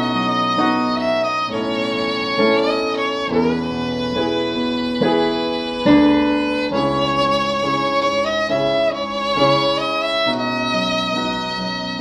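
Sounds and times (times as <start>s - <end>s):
violin slow melody: 0.0s - 12.0s.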